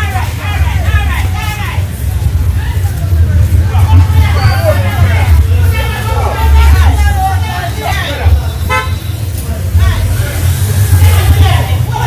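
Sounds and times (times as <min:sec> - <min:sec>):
steady low rumble: 0:00.0 - 0:07.5
voices: 0:00.0 - 0:12.0.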